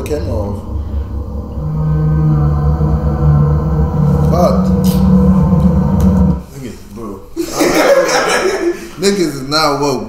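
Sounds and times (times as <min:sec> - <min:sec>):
low ominous drone: 0:00.0 - 0:06.6.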